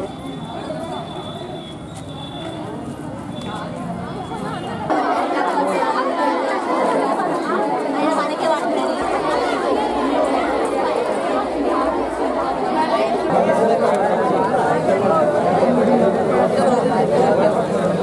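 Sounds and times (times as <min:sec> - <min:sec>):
overlapping chatter: 0:00.0 - 0:18.0.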